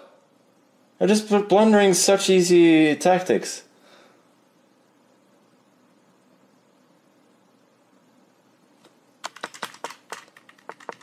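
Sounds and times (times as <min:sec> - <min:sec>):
keyboard typing clicks: 0:09.2 - 0:11.0.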